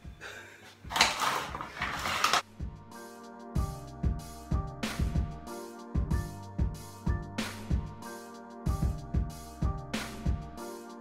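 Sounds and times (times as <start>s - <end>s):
plastic packaging crinkling: 0.9s - 2.4s
background music with a beat: 2.4s - 11.0s.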